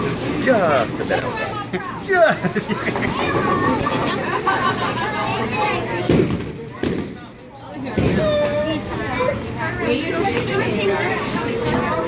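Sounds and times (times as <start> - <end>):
children's voices: 2.6 - 7.0, 7.7 - 12.0.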